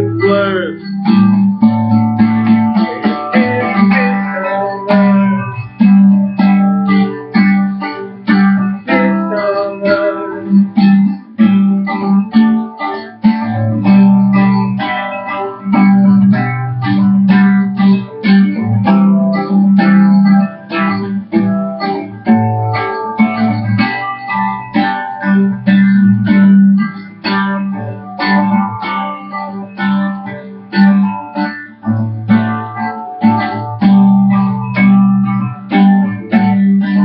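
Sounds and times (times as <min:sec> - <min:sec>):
picked guitar notes: 0:00.0 - 0:37.0.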